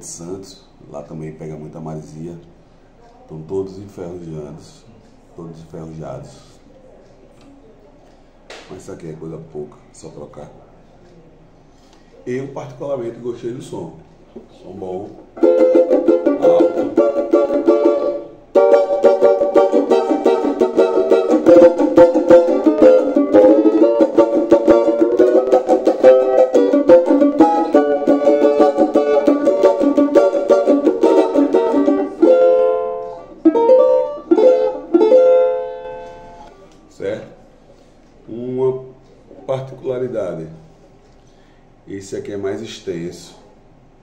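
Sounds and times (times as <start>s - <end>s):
banjo strummed in rhythmic chords: 15.4s - 36.5s.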